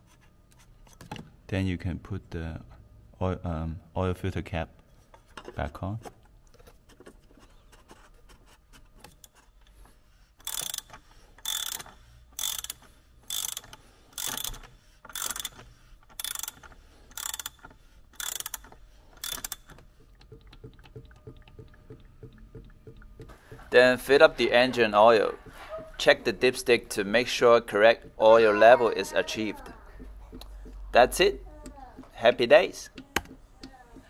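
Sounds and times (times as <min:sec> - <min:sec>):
socket ratchet clicking: 0:10.4 - 0:21.0.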